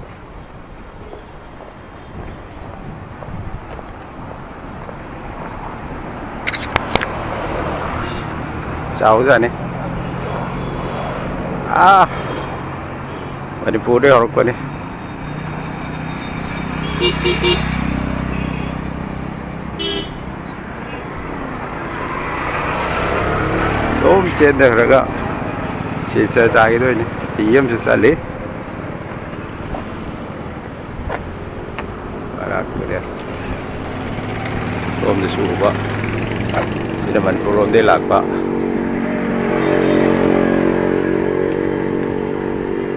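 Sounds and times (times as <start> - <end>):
motor vehicle humming: 0.0 - 42.9
vehicle horn toots: 8.0 - 8.4, 12.1 - 13.4, 15.8 - 18.9, 19.8 - 20.3, 39.5 - 40.5.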